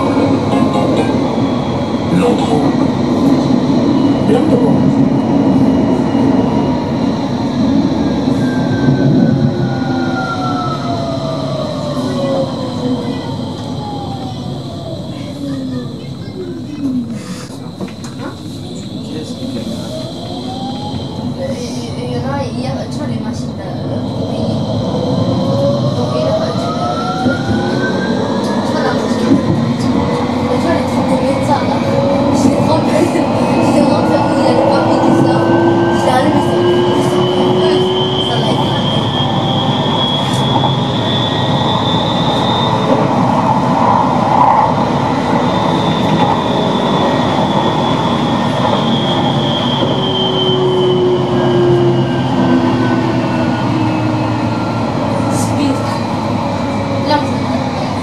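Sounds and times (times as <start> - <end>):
tram motor whine: 0.0 - 58.0
wheels rumbling on rails: 0.0 - 58.0.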